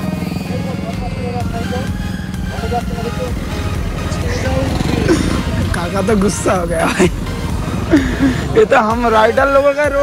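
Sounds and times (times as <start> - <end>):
auto-rickshaw engine: 0.0 - 10.0
background music: 0.0 - 10.0
car passing: 0.0 - 10.0
voices: 0.0 - 10.0.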